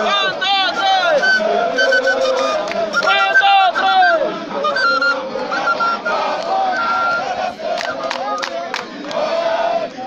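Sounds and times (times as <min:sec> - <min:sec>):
group chanting loudly: 0:00.0 - 0:10.0.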